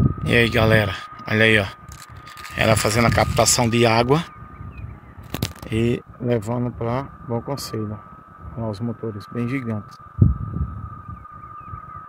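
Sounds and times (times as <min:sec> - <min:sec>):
high-pitched whine: 0:00.0 - 0:12.0
wind buffeting microphone: 0:00.0 - 0:12.0.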